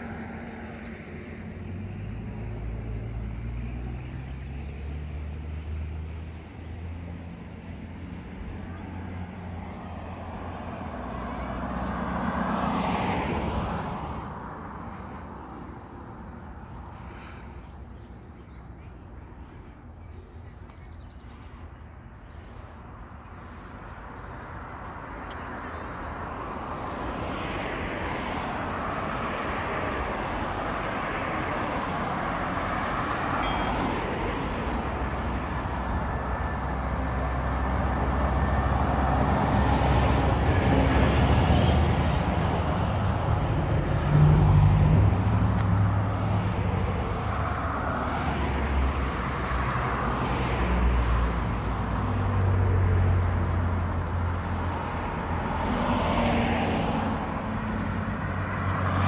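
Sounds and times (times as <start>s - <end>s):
cars and trucks passing: 0.0s - 59.0s.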